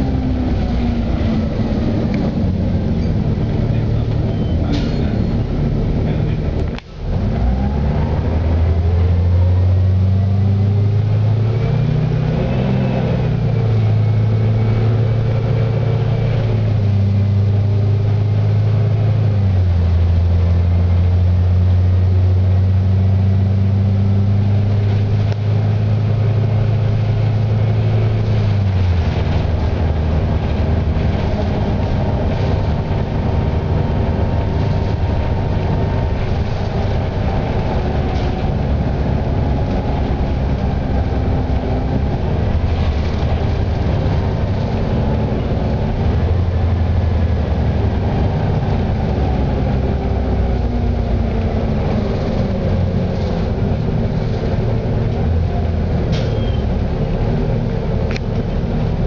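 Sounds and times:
bus engine running: 0:00.0 - 0:59.0
road noise rumble: 0:00.0 - 0:59.0.

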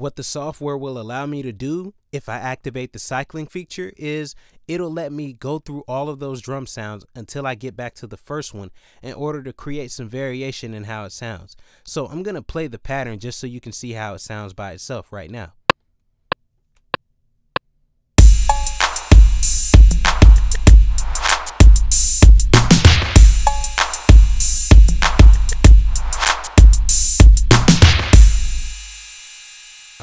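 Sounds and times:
deep kick drum boom: 0:18.2 - 0:28.8
drum machine beat: 0:18.2 - 0:29.0.

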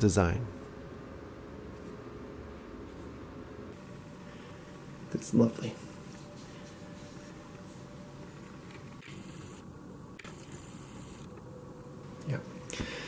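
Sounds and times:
low background noise: 0:00.0 - 0:13.0.

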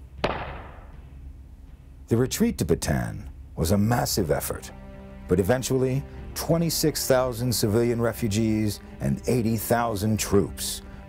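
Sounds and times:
low steady hum: 0:00.0 - 0:11.0
sharp bang with echo: 0:00.2 - 0:01.0.

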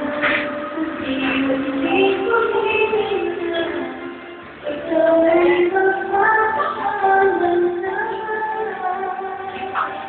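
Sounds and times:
backing music: 0:00.0 - 0:10.0.

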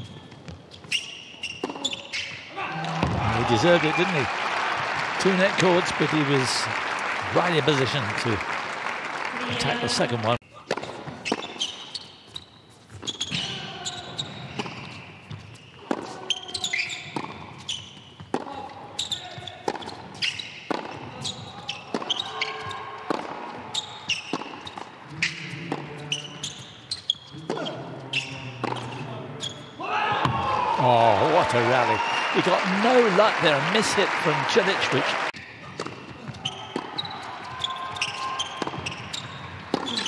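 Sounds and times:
crowd applauding and cheering: 0:02.8 - 0:10.4, 0:30.7 - 0:35.4
tennis ball bouncing: 0:19.6 - 0:21.1, 0:24.2 - 0:24.9, 0:28.6 - 0:28.9, 0:38.0 - 0:40.0.

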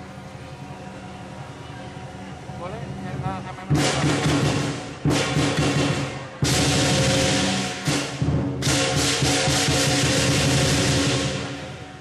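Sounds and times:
big drum beating: 0:03.1 - 0:12.0
cymbals clashing: 0:03.7 - 0:12.0.

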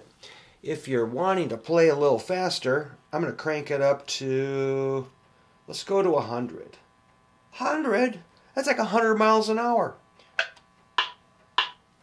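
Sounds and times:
metronome clicking: 0:10.4 - 0:11.8.

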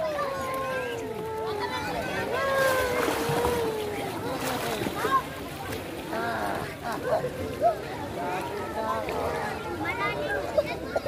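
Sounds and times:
crowd hubbub: 0:00.0 - 0:11.0
pool water noise: 0:00.0 - 0:11.0.

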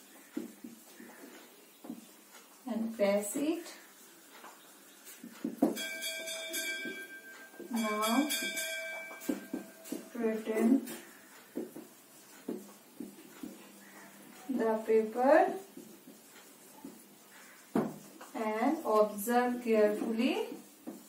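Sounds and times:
woman speaking slowly: 0:02.7 - 0:03.8, 0:07.7 - 0:08.3, 0:10.1 - 0:10.9, 0:14.5 - 0:15.6, 0:18.3 - 0:20.6
marker tapping on whiteboard: 0:10.9 - 0:14.4, 0:15.8 - 0:18.3.

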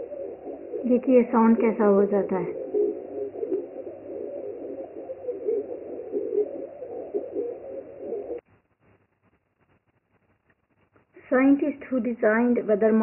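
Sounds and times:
garbled wavering noise from speaker: 0:00.0 - 0:11.8.

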